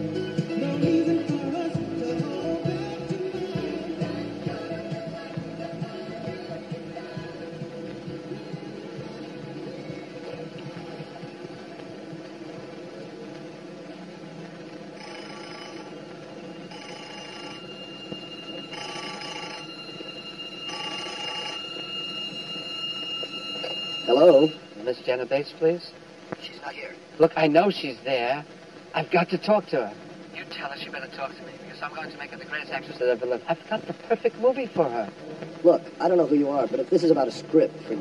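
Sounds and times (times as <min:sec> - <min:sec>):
low steady background: 0:00.0 - 0:38.0
desk telephone ringing: 0:15.0 - 0:24.8
man speaking: 0:24.0 - 0:38.0.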